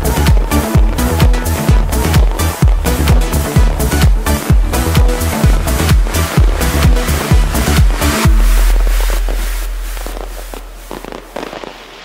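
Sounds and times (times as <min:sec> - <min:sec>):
fireworks crackling and popping: 0:00.0 - 0:12.0
low rumble: 0:02.7 - 0:11.4.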